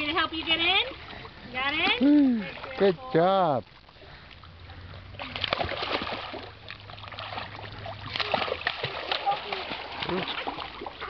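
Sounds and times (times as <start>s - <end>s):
water splashing in a kiddie pool: 0.0s - 11.0s.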